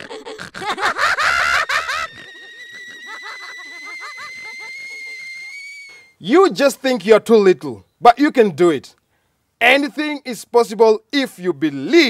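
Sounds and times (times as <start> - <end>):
echoing cartoon laughter: 0.0 - 6.0.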